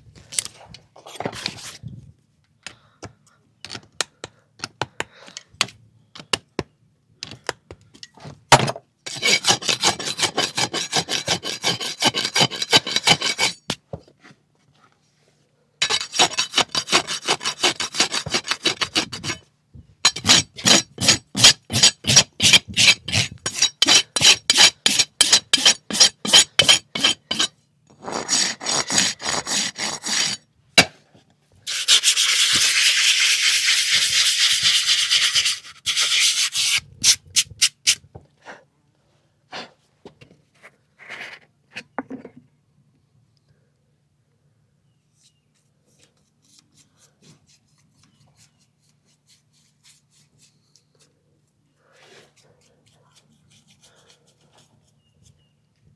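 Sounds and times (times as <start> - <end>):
hoof rasp filing: 9.1 - 13.8, 15.8 - 19.4, 20.1 - 30.4, 31.7 - 38.0, 52.2 - 55.2.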